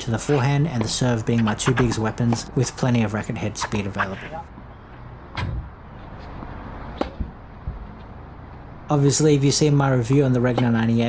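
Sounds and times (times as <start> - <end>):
tennis ball knocks: 1.6 - 2.5, 10.1 - 10.9.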